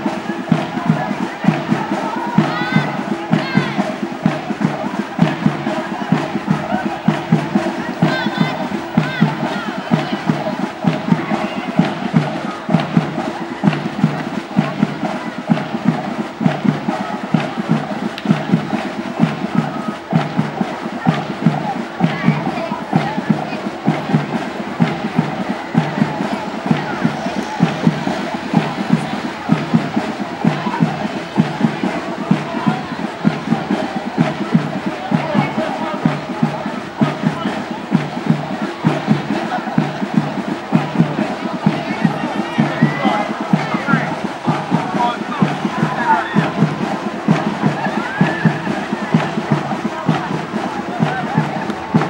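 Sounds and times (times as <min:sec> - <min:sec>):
crowd voices: 0:00.0 - 0:52.0
drums playing marching beat: 0:00.0 - 0:52.0.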